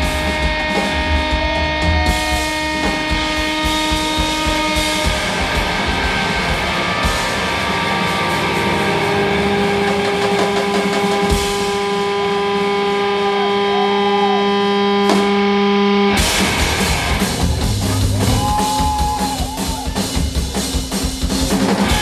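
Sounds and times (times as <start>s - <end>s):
electric guitar feedback: 0.0s - 20.3s
drums and cymbals: 0.0s - 22.0s.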